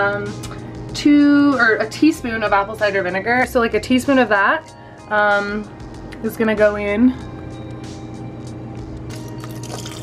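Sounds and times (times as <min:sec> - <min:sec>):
liquid trickling and splashing: 0:09.4 - 0:10.0.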